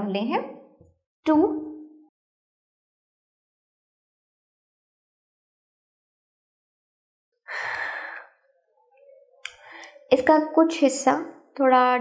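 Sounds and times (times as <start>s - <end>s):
woman sighing: 7.5s - 8.3s.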